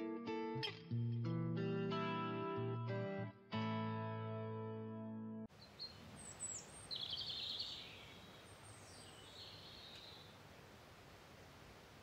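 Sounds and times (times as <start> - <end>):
birds chirping: 5.5 - 10.4.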